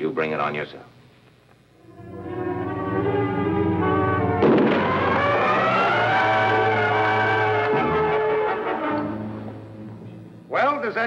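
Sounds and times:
dramatic orchestral music: 0:01.8 - 0:09.6
explosion: 0:04.4 - 0:05.9.

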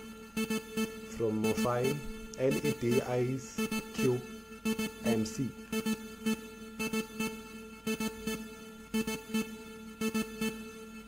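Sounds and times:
held synth tone: 0:00.0 - 0:10.7
short sharp synth notes: 0:00.0 - 0:10.7.

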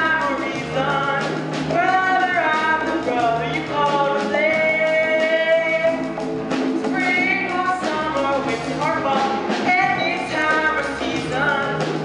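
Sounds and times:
young man singing: 0:00.0 - 0:06.2, 0:06.9 - 0:12.0
instrumental accompaniment with bass: 0:00.0 - 0:12.0.

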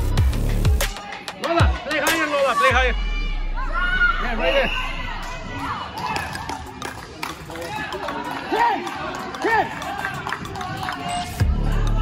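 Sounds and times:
crowd chatter: 0:00.0 - 0:12.0
people shouting calls: 0:00.9 - 0:12.0.

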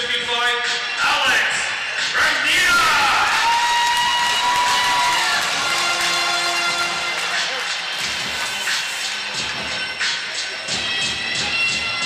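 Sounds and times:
music over arena pa: 0:00.0 - 0:12.0
crowd cheering and applauding: 0:02.7 - 0:10.4.

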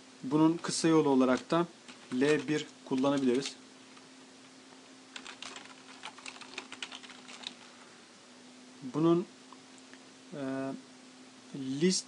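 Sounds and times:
faint steady hum: 0:00.0 - 0:12.0
typing on computer keyboard: 0:05.1 - 0:07.6.

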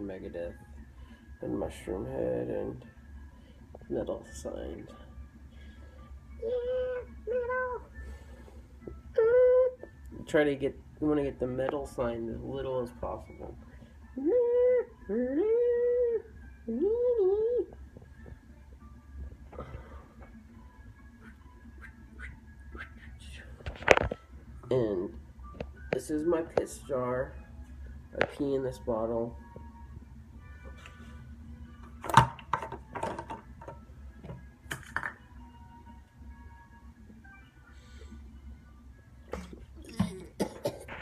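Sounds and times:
faint background music: 0:00.0 - 0:41.0.

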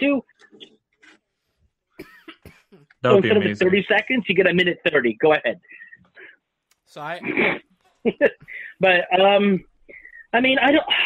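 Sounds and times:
person coughing: 0:02.0 - 0:02.8.

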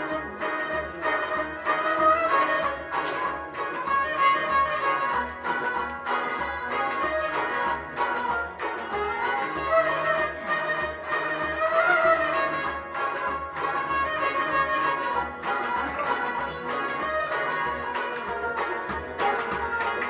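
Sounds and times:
harmonium melody: 0:00.0 - 0:20.0.

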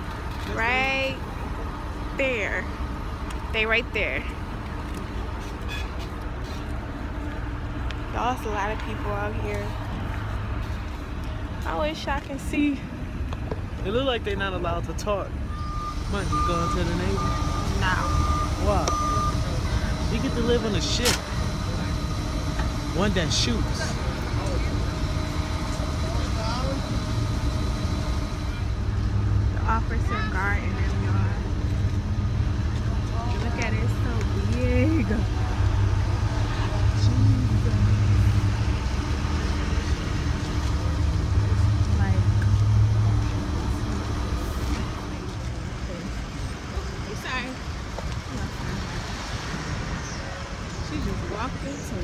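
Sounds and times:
forklift engine idling: 0:15.4 - 0:47.9.

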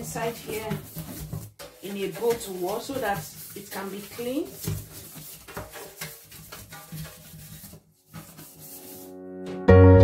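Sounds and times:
brush scrubbing steel sink: 0:00.0 - 0:09.1.

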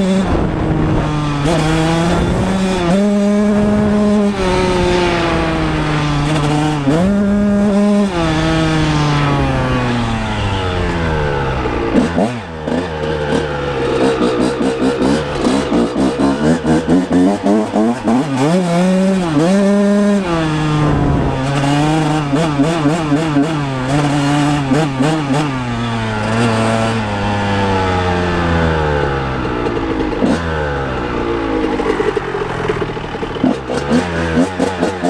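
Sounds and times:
two-stroke engine revving: 0:00.0 - 0:35.0.

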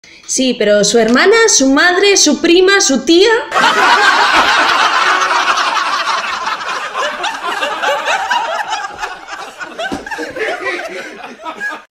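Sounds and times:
people laughing: 0:03.5 - 0:11.9.

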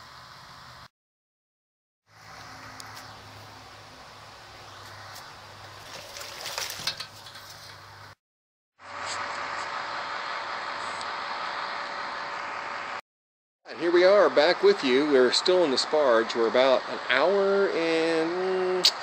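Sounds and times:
liquid splashing into metal kettle: 0:05.8 - 0:07.8.

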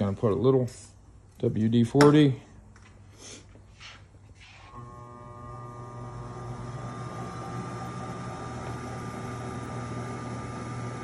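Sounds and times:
spindle motor humming: 0:04.6 - 0:11.0.

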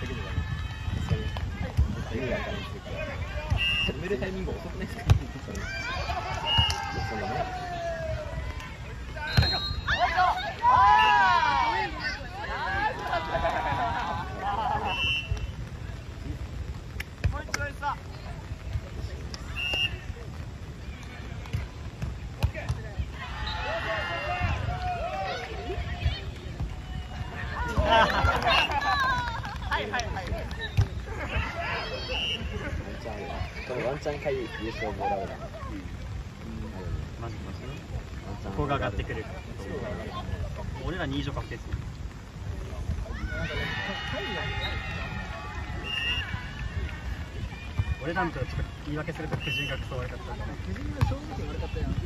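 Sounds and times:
wind rumbling on microphone: 0:00.0 - 0:03.3, 0:50.2 - 0:52.0.

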